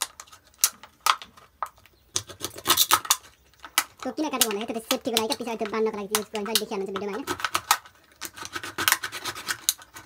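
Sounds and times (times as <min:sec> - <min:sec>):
plastic bottle being cut: 0:02.1 - 0:10.0.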